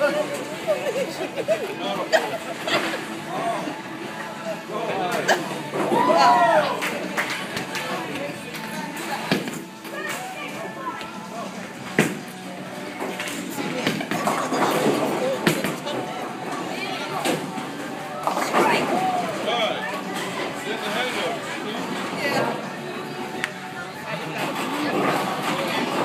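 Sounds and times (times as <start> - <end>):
background music: 0.0 - 26.0
bowling balls and pins clattering: 13.0 - 16.1.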